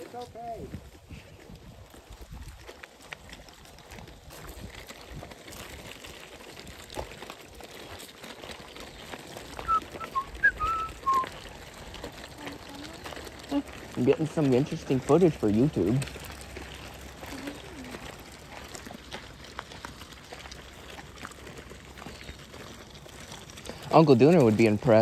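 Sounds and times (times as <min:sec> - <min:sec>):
footsteps on gravel: 0:00.0 - 0:25.0
stroller wheels crunching gravel: 0:00.0 - 0:25.0
short high whistled notes: 0:09.7 - 0:11.3.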